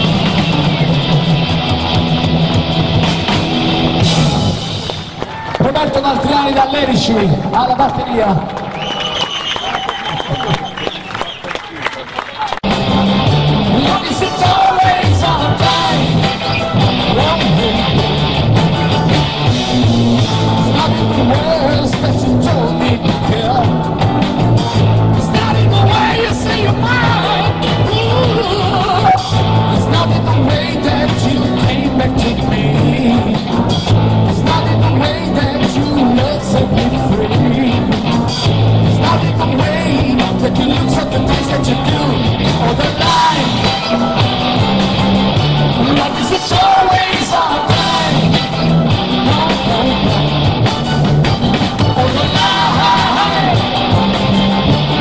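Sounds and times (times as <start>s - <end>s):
steady drum beat: 0.0s - 6.4s, 12.6s - 55.0s
live rock band playing: 0.0s - 7.8s, 12.6s - 55.0s
bass notes: 0.0s - 8.3s, 12.6s - 55.0s
crowd noise: 0.0s - 55.0s.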